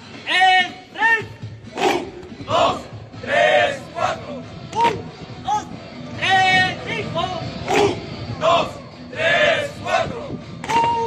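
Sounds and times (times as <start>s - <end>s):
men shouting drill calls: 0.2s - 10.2s.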